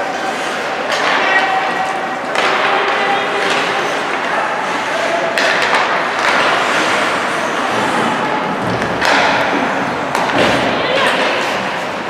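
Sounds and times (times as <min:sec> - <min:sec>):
hockey stick or puck knocks: 0:05.3 - 0:06.8, 0:08.6 - 0:11.3
skate blades scraping on ice: 0:05.9 - 0:12.0.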